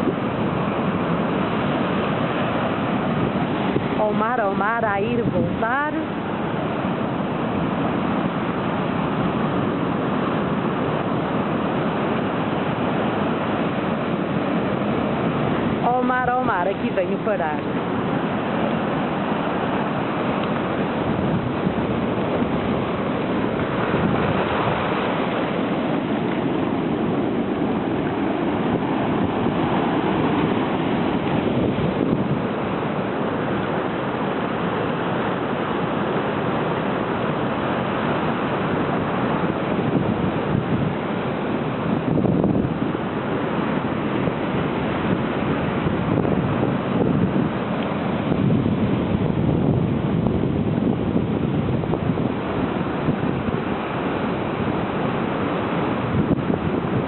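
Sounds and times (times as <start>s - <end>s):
surf washing through rocks: 0.0s - 57.0s.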